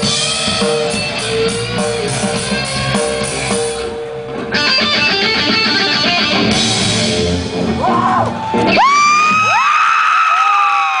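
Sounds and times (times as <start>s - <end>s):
live rock band: 0.0s - 9.9s
audience whooping: 7.7s - 11.0s.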